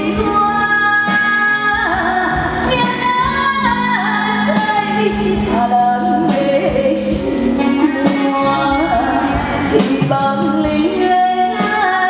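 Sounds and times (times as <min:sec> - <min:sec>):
live band playing: 0:00.0 - 0:12.0
woman singing a pop ballad: 0:00.0 - 0:12.0.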